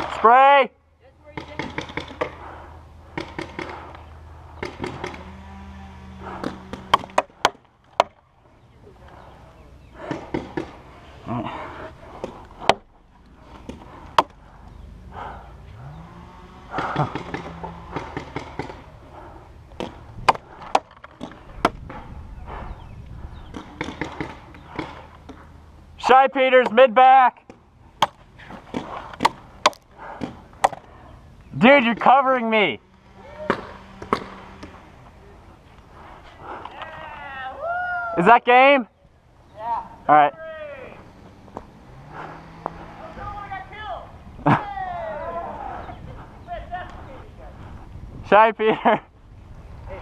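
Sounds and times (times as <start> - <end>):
paintball marker shots: 3.1 - 4.0, 6.4 - 8.2, 16.8 - 18.8, 23.5 - 25.4.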